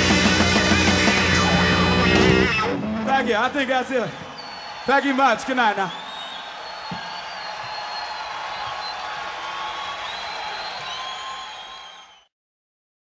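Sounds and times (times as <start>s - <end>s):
audience cheering and applauding: 0.0s - 12.3s
high whistles: 4.1s - 12.3s.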